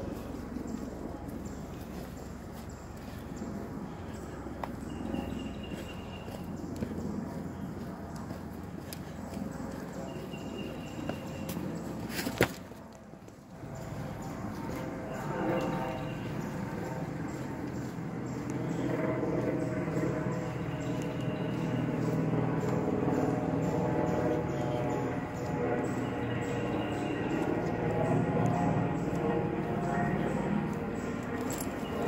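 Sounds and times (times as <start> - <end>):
footsteps on dirt trail: 0.0 - 32.0.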